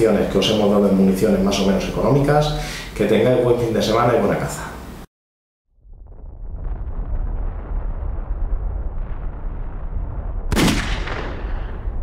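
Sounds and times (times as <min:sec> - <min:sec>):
steady low rumble: 0:05.8 - 0:12.0
sharp gunshot ringing out: 0:10.5 - 0:12.0.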